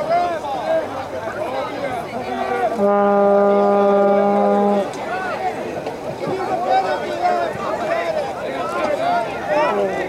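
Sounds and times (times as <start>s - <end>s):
spectators' voices: 0.0s - 10.0s
low horn blast: 2.6s - 5.0s.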